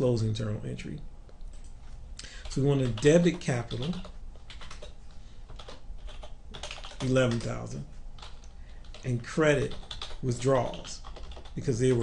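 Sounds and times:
computer keyboard typing: 2.4 - 7.6, 8.2 - 12.0.

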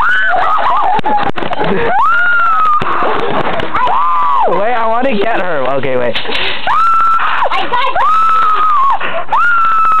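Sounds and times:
child screaming: 6.7 - 10.0.

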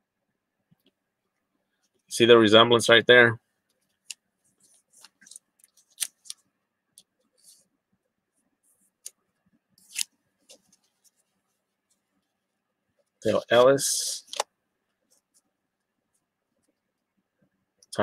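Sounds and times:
cards being shuffled by hand: 3.8 - 6.4, 9.8 - 12.1, 13.3 - 14.5.

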